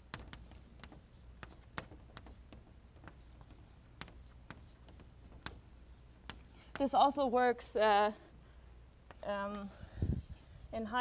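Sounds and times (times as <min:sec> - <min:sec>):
chalk scratching on blackboard: 0:00.1 - 0:07.0, 0:10.1 - 0:11.0.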